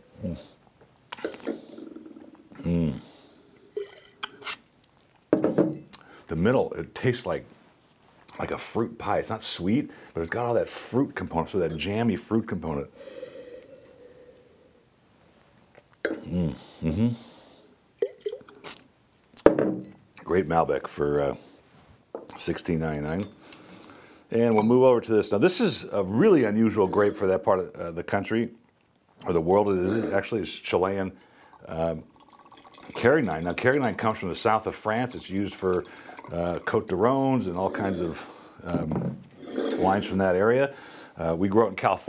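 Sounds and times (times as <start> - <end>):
mouth spitting sounds: 2.5 - 3.2, 16.1 - 17.4, 18.0 - 18.9
person humming: 2.6 - 3.0, 16.2 - 17.3
ceramic pitcher knocking on counter: 5.3 - 5.8, 19.5 - 19.9
wine slurped and swished: 32.1 - 36.9, 39.4 - 40.3.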